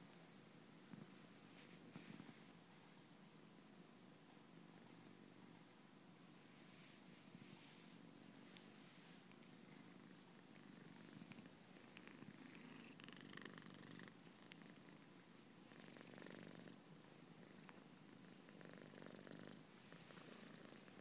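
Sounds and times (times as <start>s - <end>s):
cat purring: 0.0s - 3.1s, 6.4s - 21.0s.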